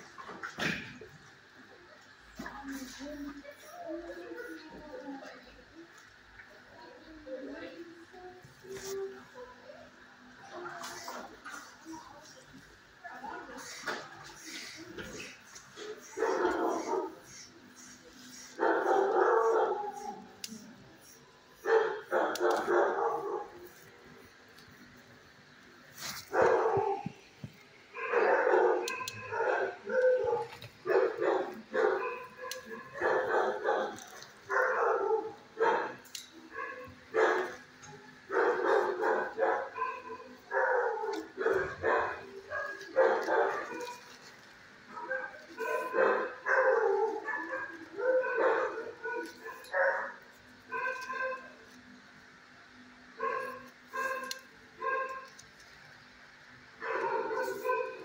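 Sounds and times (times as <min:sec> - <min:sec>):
dogs barking: 0:15.0 - 0:17.5, 0:18.3 - 0:20.6, 0:21.6 - 0:23.7, 0:26.2 - 0:27.2, 0:27.9 - 0:44.2, 0:44.8 - 0:51.7, 0:53.0 - 0:55.4, 0:56.8 - 0:58.0.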